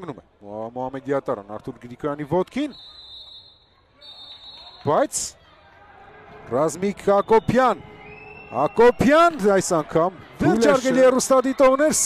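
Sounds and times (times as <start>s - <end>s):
faint stadium background noise: 0.0s - 12.0s
referee whistle blasts: 2.7s - 4.8s.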